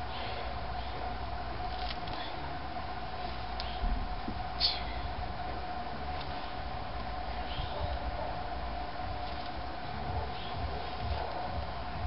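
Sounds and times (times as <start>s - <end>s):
background rumble and hiss: 0.0s - 12.0s
mid-pitched hum: 0.0s - 12.0s.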